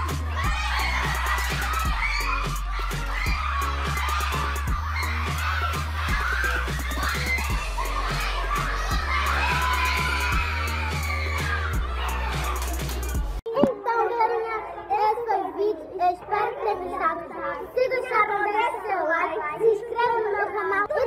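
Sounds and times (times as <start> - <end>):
loud dance music with bass beat: 0.0 - 13.4
children shouting and screaming: 0.0 - 21.0.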